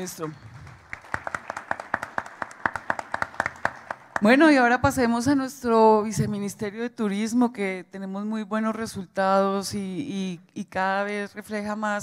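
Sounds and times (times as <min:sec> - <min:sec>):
light applause: 0:00.0 - 0:04.3.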